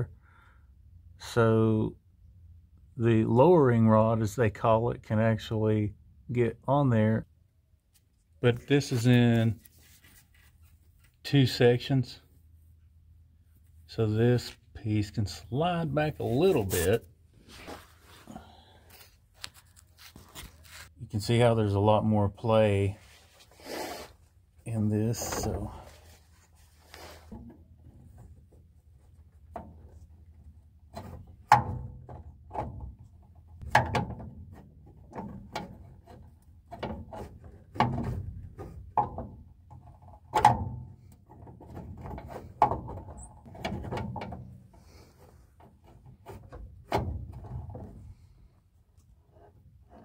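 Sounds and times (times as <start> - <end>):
metal rod clunking and scraping: 16.1 - 18.3, 24.9 - 48.4.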